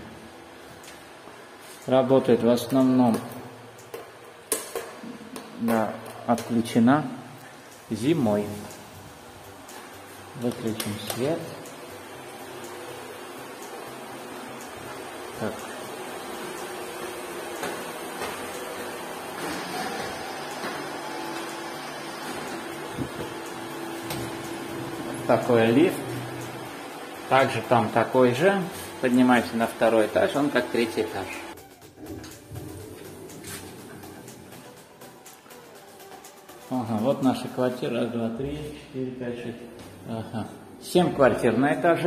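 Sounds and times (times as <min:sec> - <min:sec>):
steady hum: 0:00.0 - 0:41.8
footsteps climbing stairs: 0:16.4 - 0:24.7, 0:31.6 - 0:34.7.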